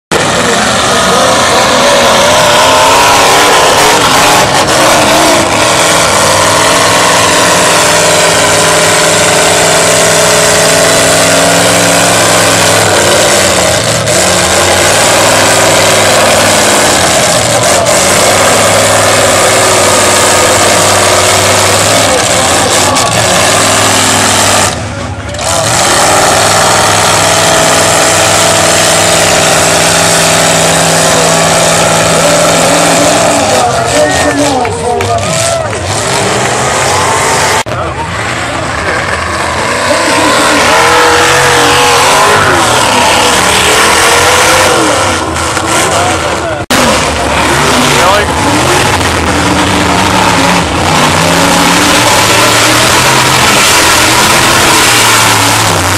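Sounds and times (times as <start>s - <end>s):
truck engine revving hard: 0.0s - 55.9s.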